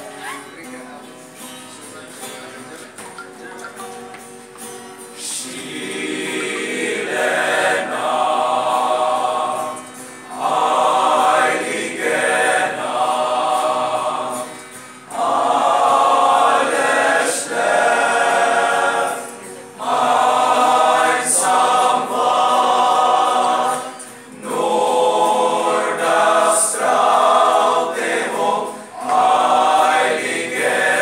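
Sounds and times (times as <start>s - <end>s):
male choir singing carol: 5.2s - 31.0s.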